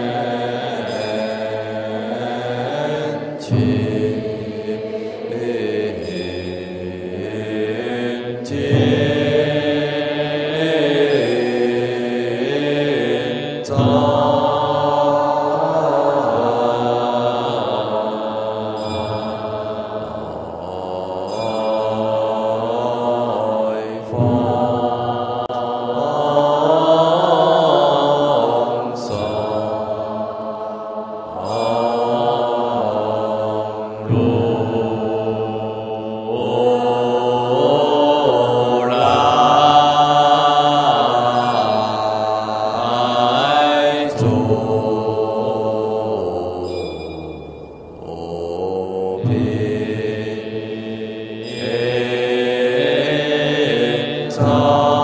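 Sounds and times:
women chanting in unison: 0.0 - 46.7, 48.0 - 55.0.

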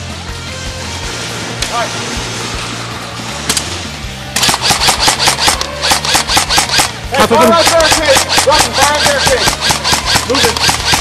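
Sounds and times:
airsoft guns firing: 4.3 - 11.0.

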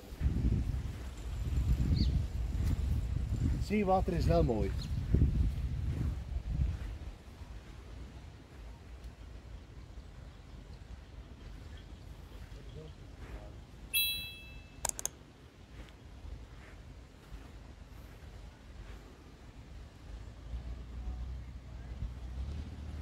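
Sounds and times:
brief high-pitched chirp: 13.9 - 14.9
sharp click: 14.8 - 15.2.

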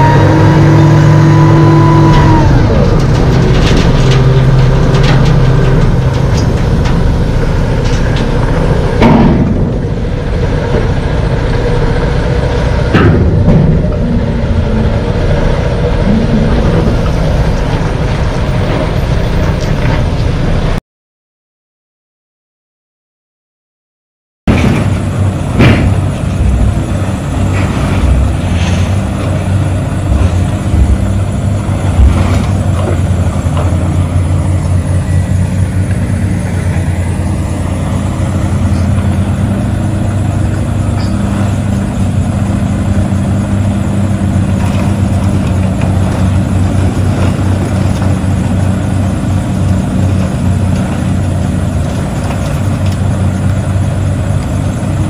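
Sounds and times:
heavy diesel machinery running: 0.0 - 20.8, 24.5 - 55.0
scrap metal clanking and crashing: 2.1 - 9.8.

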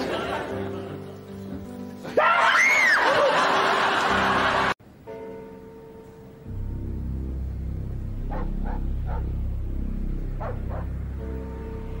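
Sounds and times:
background music: 0.0 - 12.0
shrill scream: 2.2 - 3.1.

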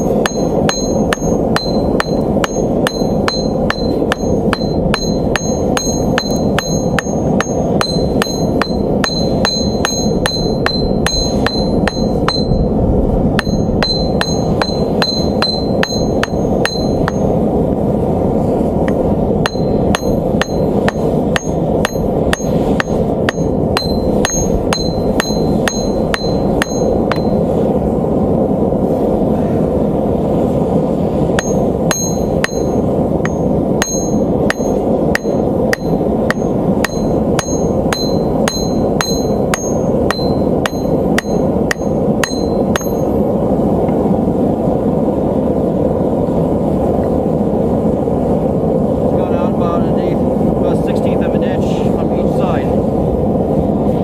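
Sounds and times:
hammer striking hot steel: 0.0 - 17.4, 18.8 - 27.6, 31.3 - 43.2
steady rushing noise: 0.0 - 54.0.

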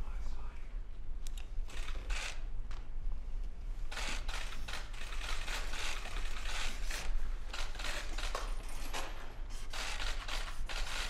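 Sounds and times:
camera shutters clicking rapidly: 1.6 - 2.5, 3.9 - 11.0.

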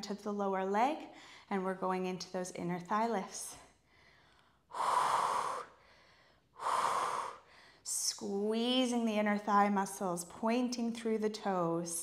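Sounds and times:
woman breathing: 1.1 - 1.5, 3.6 - 8.1.

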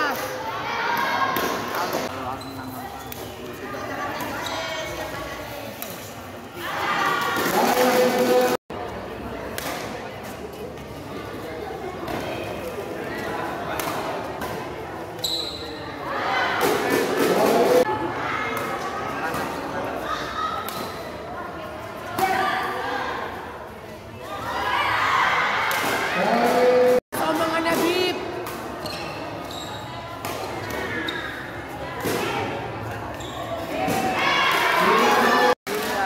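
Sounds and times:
spectators' voices: 0.0 - 36.0
shoe squeak: 2.2 - 3.6, 4.2 - 5.0, 15.2 - 16.0, 28.8 - 30.1, 31.0 - 31.6, 33.1 - 33.8.

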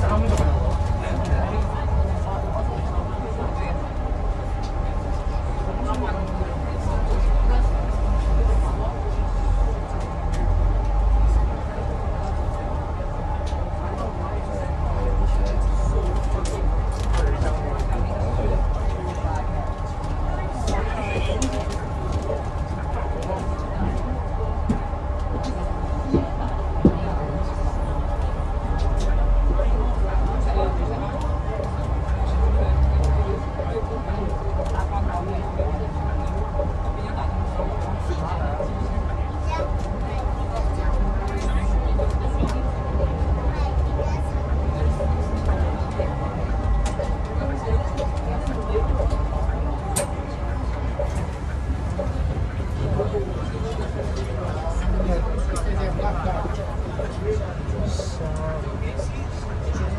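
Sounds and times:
bus interior hum: 0.0 - 59.9
faint passenger chatter: 0.0 - 59.9
low road rumble: 0.0 - 59.9.

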